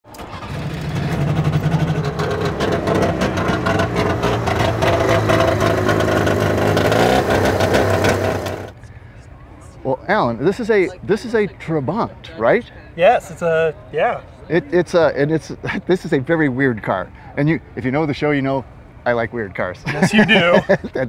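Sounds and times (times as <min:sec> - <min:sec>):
two-stroke engine revving: 0:00.2 - 0:08.7.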